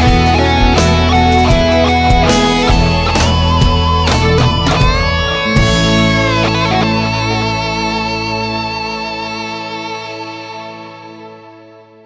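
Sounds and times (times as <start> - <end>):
rock band music: 0.0 - 11.3.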